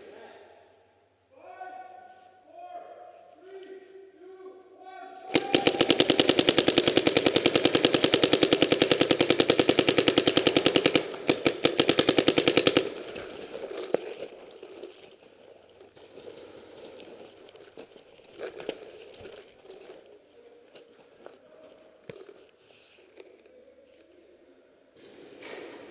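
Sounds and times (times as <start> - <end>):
paintball marker rapid firing: 5.3 - 14.8.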